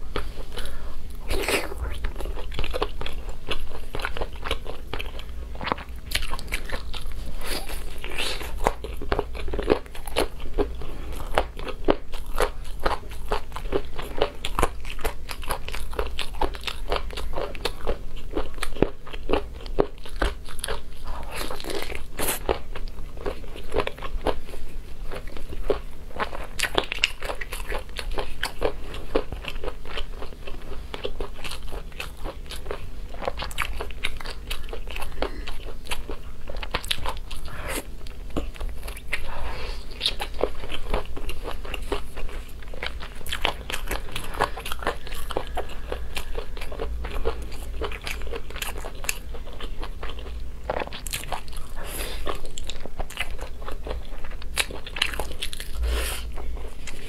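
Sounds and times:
biting and chewing meat: 0.0 - 57.0.

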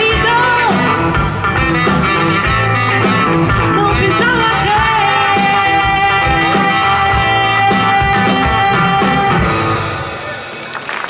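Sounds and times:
saxophone lead: 0.0 - 10.5
live band playing: 0.0 - 11.0.

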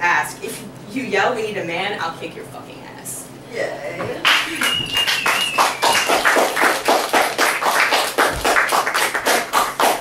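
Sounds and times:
audience clapping: 4.2 - 10.0.

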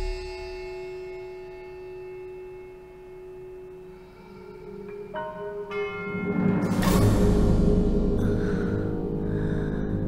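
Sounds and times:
sustained bell-like tone: 0.0 - 8.2.

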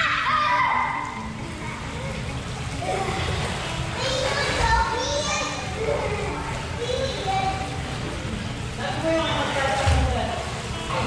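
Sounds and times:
children calling and chattering: 0.0 - 8.5.

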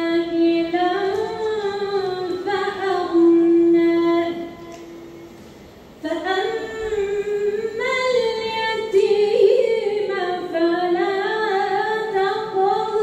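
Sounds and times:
woman reciting melodically: 0.0 - 5.0, 6.0 - 13.0.

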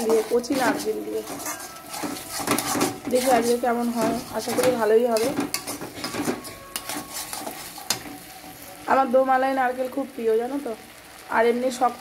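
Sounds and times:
spatula scraping a steel wok: 0.0 - 8.7.

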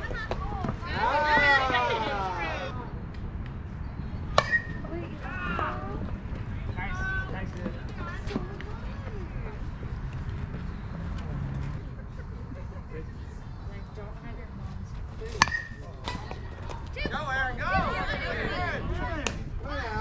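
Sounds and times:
distant voices: 0.0 - 20.0
bat hitting ball: 4.3 - 4.9, 15.4 - 16.4.

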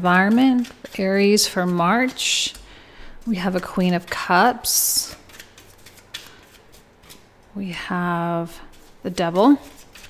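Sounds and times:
cards rustling: 0.0 - 7.5, 8.6 - 10.0.

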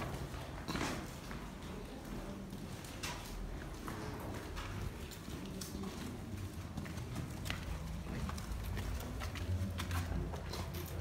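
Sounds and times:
footsteps clicking and tapping: 0.0 - 11.0.

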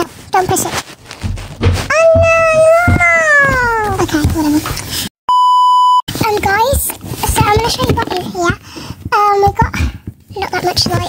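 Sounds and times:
child's high-pitched cry: 1.9 - 4.0
child chatter: 1.9 - 4.6
censor bleep: 5.3 - 6.0.

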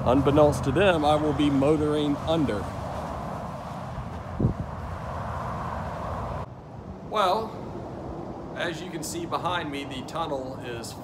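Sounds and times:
highway traffic rushing: 0.0 - 11.0.

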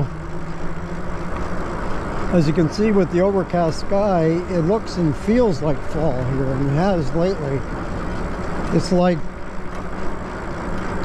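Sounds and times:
low steady hum: 0.0 - 11.0
tyre rumble on asphalt: 0.0 - 11.0.

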